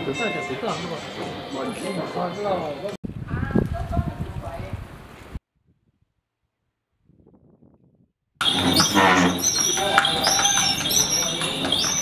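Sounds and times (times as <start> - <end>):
bird chirping: 8.4 - 12.0
people talking: 8.4 - 12.0.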